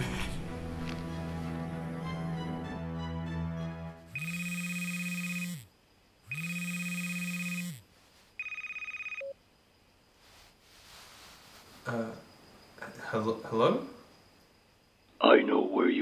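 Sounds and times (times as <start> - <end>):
music: 0.0 - 4.2
mobile phone ringtone: 4.1 - 5.7, 6.3 - 7.8, 8.4 - 9.4.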